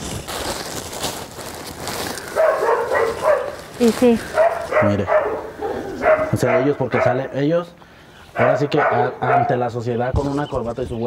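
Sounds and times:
plastic bags rustling: 0.0 - 6.4
dog whining and yelping: 4.3 - 7.2.

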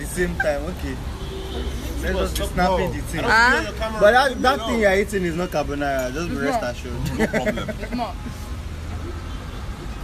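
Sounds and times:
man speaking: 1.9 - 8.2.

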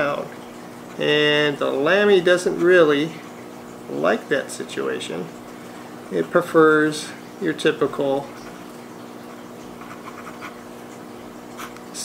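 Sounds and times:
pen scratching on paper: 9.8 - 10.6.

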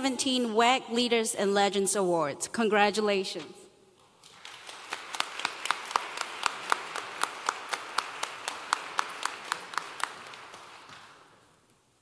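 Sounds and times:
crowd applause: 4.2 - 11.5
close hand claps: 4.2 - 11.6.

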